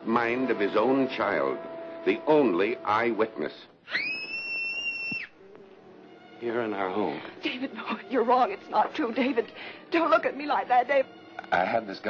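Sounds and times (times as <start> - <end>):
high-pitched scream: 3.9 - 5.4.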